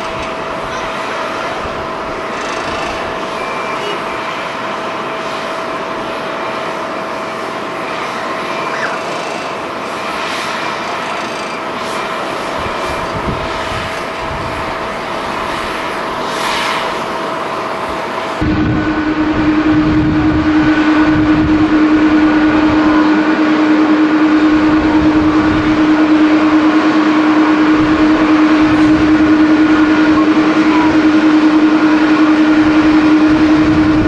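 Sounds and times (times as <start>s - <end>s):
jet engine noise: 0.0s - 34.0s
thin steady whine: 0.0s - 34.0s.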